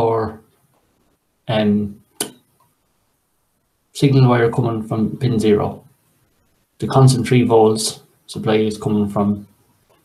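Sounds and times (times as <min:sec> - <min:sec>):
sharp click: 0:02.2 - 0:02.5.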